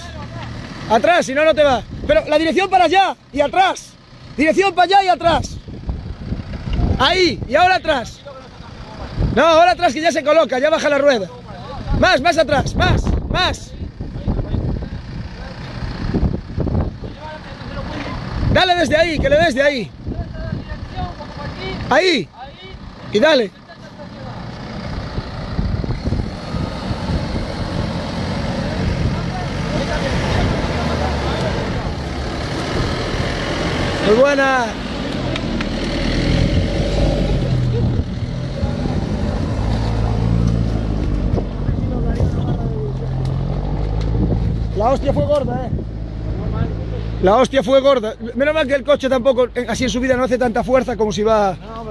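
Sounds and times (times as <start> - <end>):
car engine running at low revs: 3.2 - 9.8, 11.7 - 51.9
car engine revving under load: 24.3 - 47.4.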